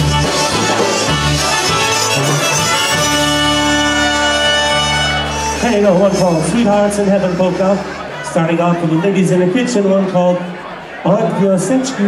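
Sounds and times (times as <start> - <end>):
polka band playing: 0.0 - 12.0.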